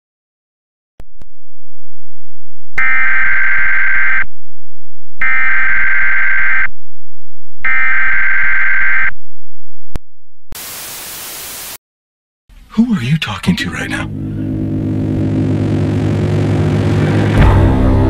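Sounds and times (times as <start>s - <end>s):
tv static hiss: 10.6s - 11.8s
buzzy digital data bursts: 14.6s - 17.4s.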